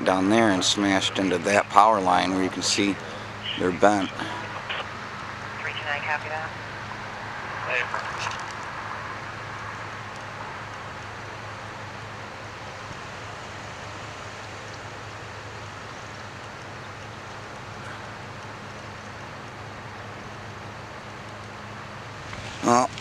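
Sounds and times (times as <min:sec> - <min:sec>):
engine hum: 0:00.0 - 0:23.0
road noise: 0:00.0 - 0:23.0.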